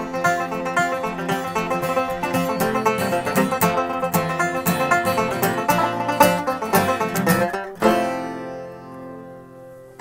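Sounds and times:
acoustic guitar and banjo playing: 0:00.0 - 0:10.0.

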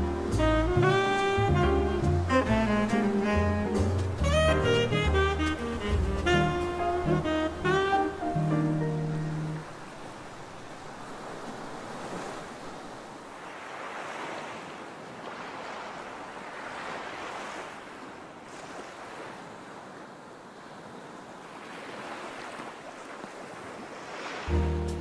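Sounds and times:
ocean surf on sandy beach: 0:00.0 - 0:25.0.

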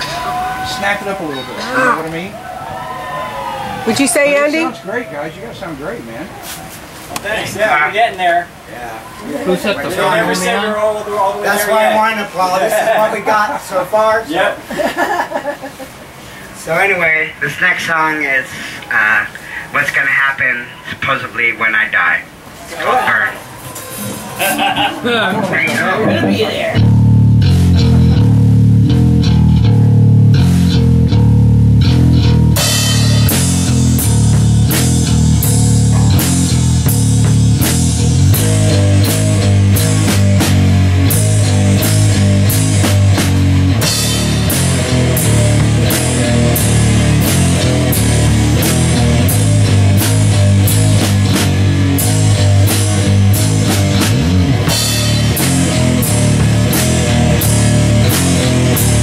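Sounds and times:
bass guitar: 0:00.0 - 0:02.2, 0:25.9 - 0:59.0
drum kit beat: 0:03.9 - 0:04.8, 0:26.7 - 0:59.0
electric guitar riff: 0:25.6 - 0:59.0.

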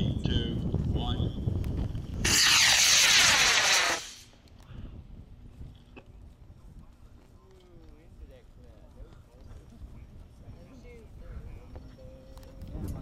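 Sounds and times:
wind rumbling on microphone: 0:00.0 - 0:13.0
rocket motor burning: 0:02.0 - 0:04.6.

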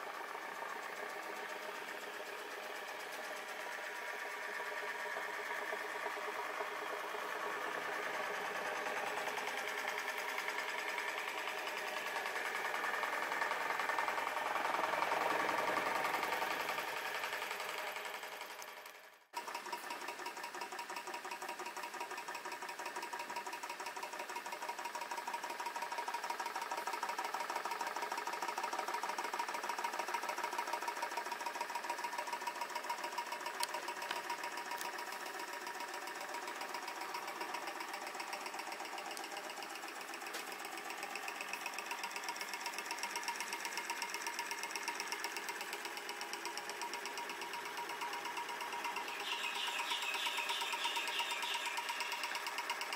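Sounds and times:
engine mechanical clatter: 0:00.0 - 0:52.9.

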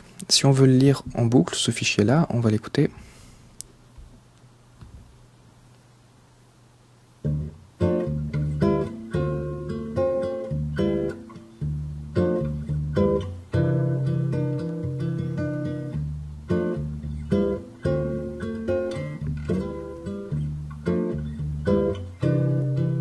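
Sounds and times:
guitar picked notes and chords: 0:07.2 - 0:23.0.

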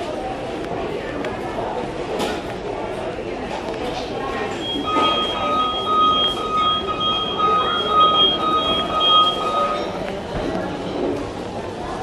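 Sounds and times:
busy shop background noise: 0:00.0 - 0:12.0.

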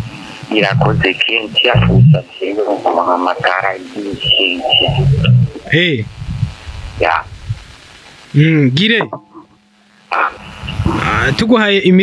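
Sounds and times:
people talking: 0:00.0 - 0:07.4, 0:08.3 - 0:12.0.

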